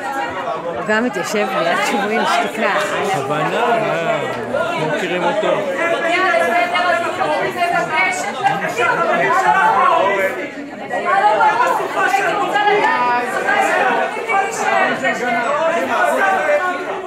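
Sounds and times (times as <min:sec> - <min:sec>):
babble of overlapping voices: 0:00.0 - 0:17.0.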